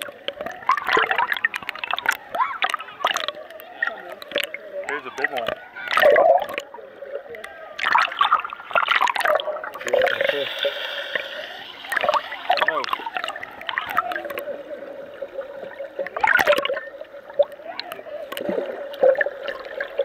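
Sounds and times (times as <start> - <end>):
water sloshing and gurgling: 0.0 - 20.0.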